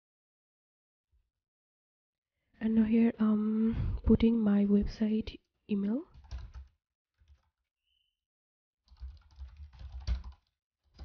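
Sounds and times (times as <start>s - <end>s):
computer keyboard typing: 6.1s - 7.6s, 8.9s - 11.0s.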